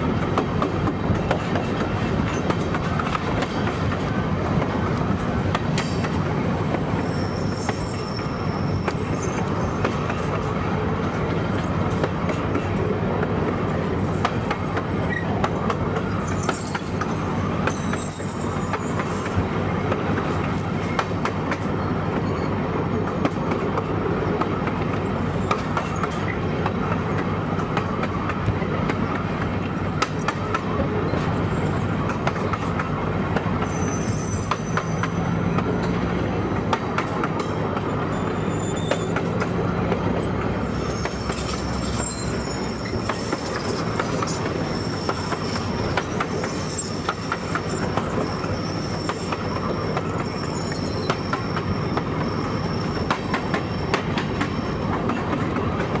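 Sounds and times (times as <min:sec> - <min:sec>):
train running rumble: 0:00.0 - 0:56.0
wheel squeal: 0:06.9 - 0:10.4, 0:16.0 - 0:19.4, 0:20.3 - 0:22.8, 0:33.5 - 0:36.0, 0:37.8 - 0:39.6, 0:40.2 - 0:55.2.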